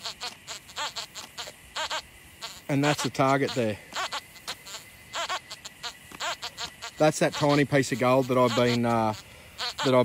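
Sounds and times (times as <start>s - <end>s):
metal detector chirping tones: 0.0s - 10.0s.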